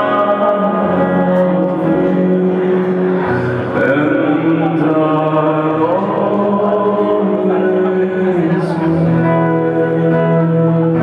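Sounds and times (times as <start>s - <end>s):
acoustic guitar: 0.0s - 11.0s
man singing sustained notes: 0.0s - 11.0s.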